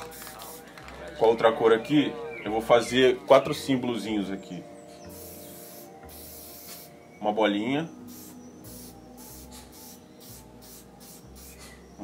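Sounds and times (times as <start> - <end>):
spray paint can hissing: 0.0 - 0.8, 5.1 - 6.9, 8.0 - 11.8.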